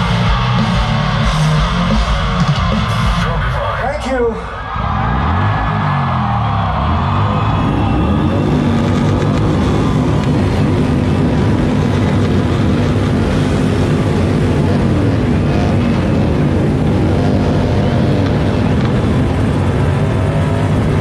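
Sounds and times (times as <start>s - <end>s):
low droning amplified rumble: 0.0s - 21.0s.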